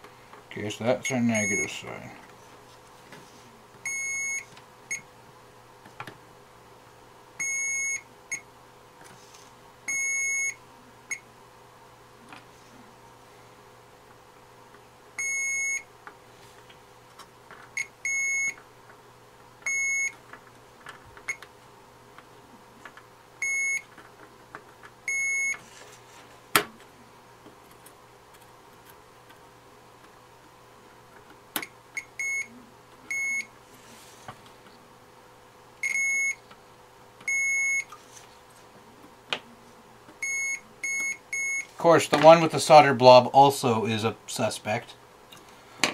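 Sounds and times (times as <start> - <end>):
multimeter continuity beeps: 1.3 - 1.8, 3.8 - 5.1, 7.4 - 8.5, 9.9 - 11.2, 15.2 - 15.9, 17.8 - 18.6, 19.6 - 20.2, 23.4 - 23.9, 25.1 - 25.6, 32.0 - 32.5, 33.1 - 33.5, 35.8 - 36.4, 37.2 - 37.9, 40.2 - 41.7.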